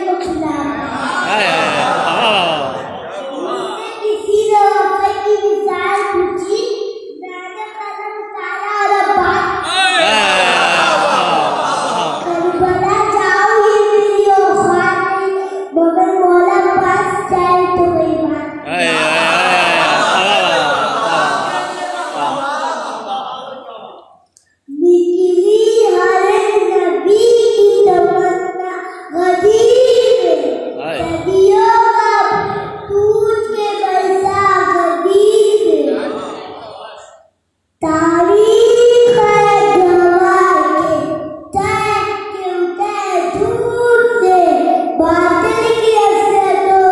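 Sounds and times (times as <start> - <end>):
boy singing into a microphone: 24.8 - 36.2, 37.8 - 46.9.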